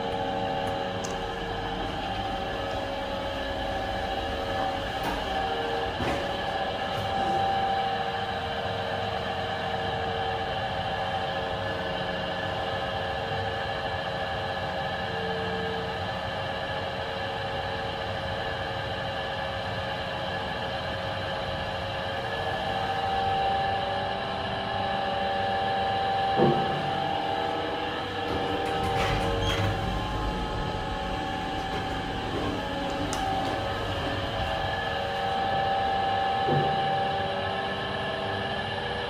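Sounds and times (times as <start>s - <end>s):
lift car hum and rush: 0.0s - 39.0s
faint whining tones: 25.4s - 39.0s.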